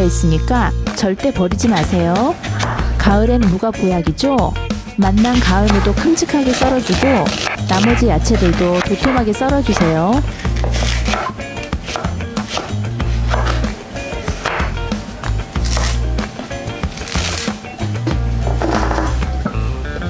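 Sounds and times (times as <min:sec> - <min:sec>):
knife cutting on wooden board: 0:01.7 - 0:02.8, 0:05.3 - 0:17.5
background music with bass line: 0:07.0 - 0:20.0.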